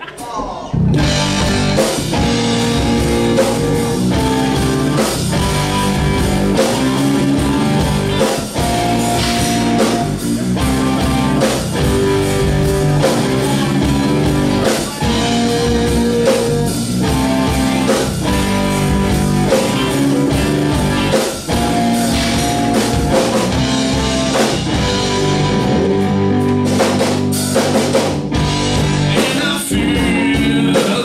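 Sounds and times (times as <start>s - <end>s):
drum kit: 0.0s - 31.0s
electric guitars strumming: 0.1s - 31.0s.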